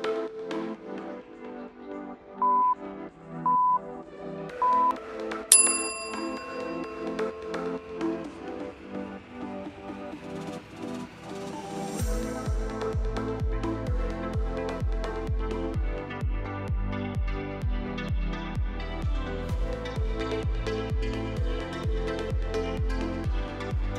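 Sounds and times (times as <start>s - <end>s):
electronic workout music: 0.0s - 23.9s
short timer beeps: 2.4s - 2.8s
higher ringing tone: 5.5s - 7.2s.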